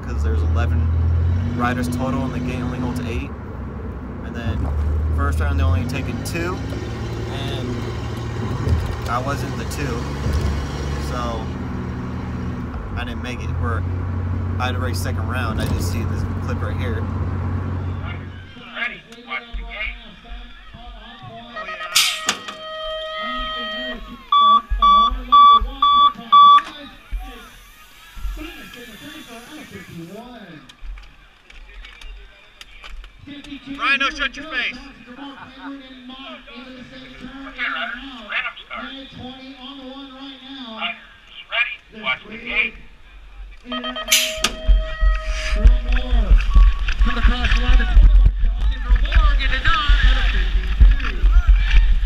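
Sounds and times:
unclear voices: 17.8s - 44.7s
loud short beeps: 22.0s - 26.7s, 43.8s - 45.6s
long electronic tone: 22.4s - 26.6s, 43.8s - 45.6s.

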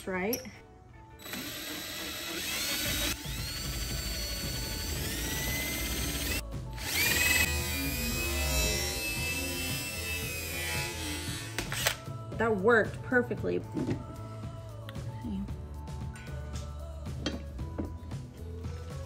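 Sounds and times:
cordless drill motor whine: 1.2s - 11.9s.

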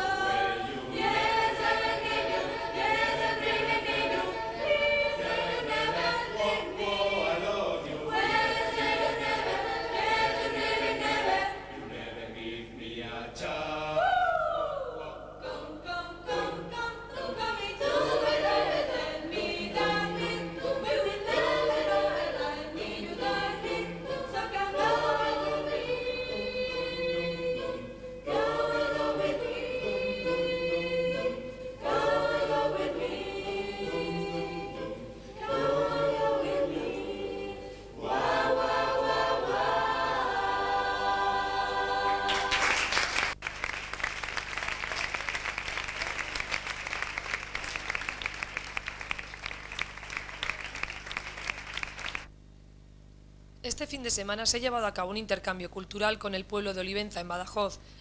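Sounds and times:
choir singing: 0.0s - 43.2s
audience applause: 42.3s - 52.3s.

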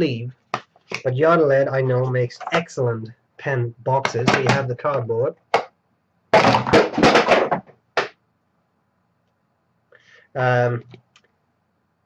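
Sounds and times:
short breath: 9.9s - 10.4s.

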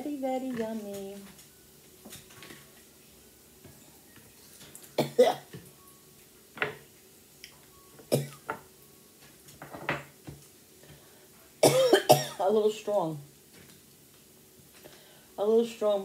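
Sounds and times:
woman coughing: 5.0s - 5.5s, 11.6s - 12.5s.

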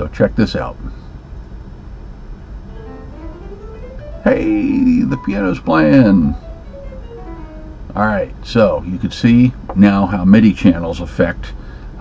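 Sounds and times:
grand piano notes stepping upward: 2.5s - 8.6s.

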